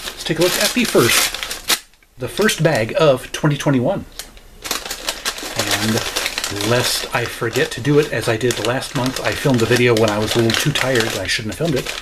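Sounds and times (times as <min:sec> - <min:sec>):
paper bag rustling: 0:00.0 - 0:03.0, 0:04.1 - 0:12.0.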